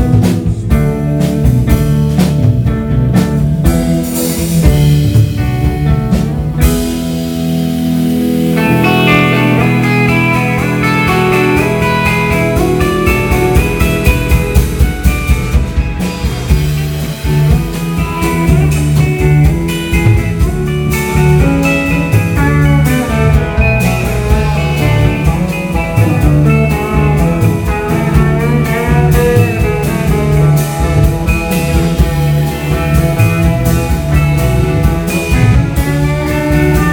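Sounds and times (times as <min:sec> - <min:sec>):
bass: 0:00.0 - 0:36.9
drum kit beat: 0:00.0 - 0:36.9
electric guitars: 0:00.0 - 0:36.9
keyboard: 0:00.0 - 0:36.9.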